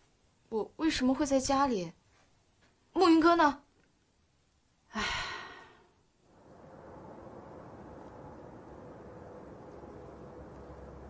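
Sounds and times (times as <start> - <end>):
woman sighing: 4.9 - 5.9.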